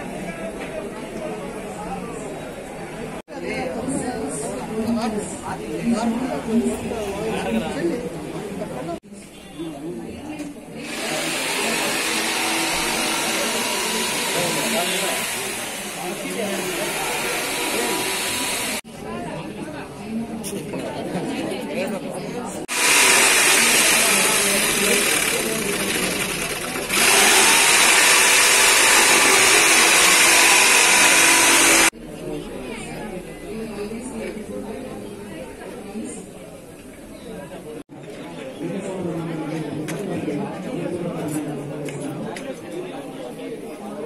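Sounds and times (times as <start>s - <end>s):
people talking in background: 0.0s - 44.0s
voices: 0.0s - 44.0s
loud machine noise: 10.8s - 18.8s, 22.7s - 31.9s.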